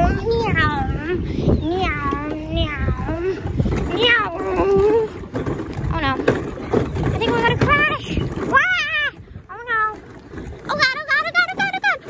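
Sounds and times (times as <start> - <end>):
wind rumble: 0.0 - 12.0
handling noise: 3.5 - 9.0.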